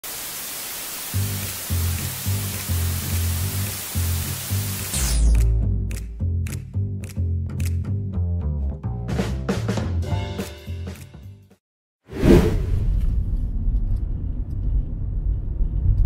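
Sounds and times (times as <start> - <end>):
television static hiss: 0.0 - 4.9
repeating bass line music: 4.5 - 10.9.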